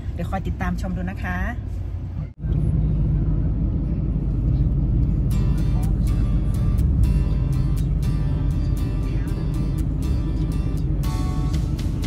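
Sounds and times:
car road and engine rumble: 0.0s - 12.0s
background music with a beat: 5.3s - 12.0s.

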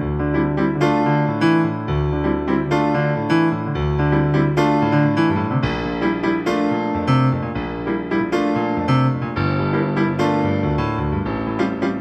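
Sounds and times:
digital piano chords: 0.0s - 12.0s.

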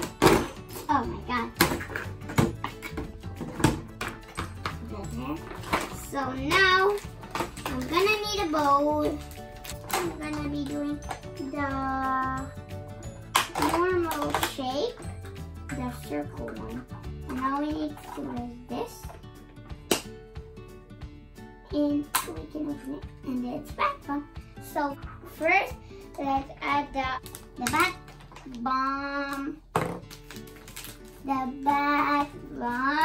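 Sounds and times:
background music: 0.0s - 33.0s
plastic packaging clacks: 5.4s - 11.4s, 13.3s - 14.7s, 27.2s - 28.6s, 29.8s - 31.2s.

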